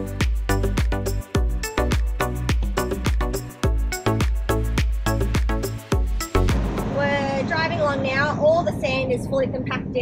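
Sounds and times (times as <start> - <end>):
background music with a beat: 0.0 - 7.0
road noise: 6.5 - 10.0.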